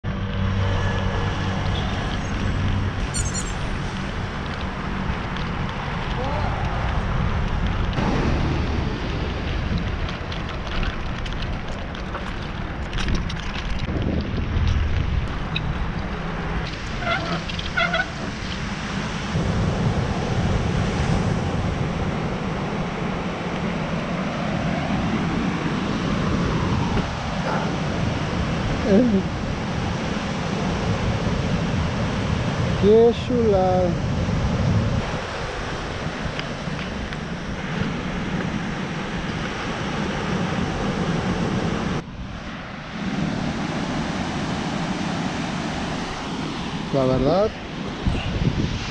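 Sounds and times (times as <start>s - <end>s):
ocean surf washing on beach: 0.4s - 48.9s
wind buffeting microphone: 3.7s - 48.9s.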